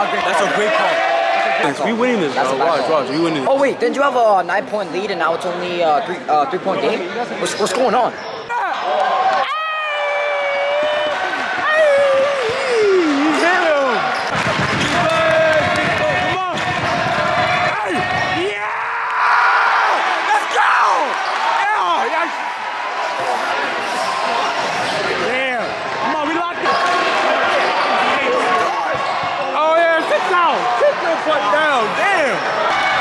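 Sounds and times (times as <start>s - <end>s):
spectators shouting: 8.5s - 33.0s
sneakers squeaking: 13.9s - 15.1s.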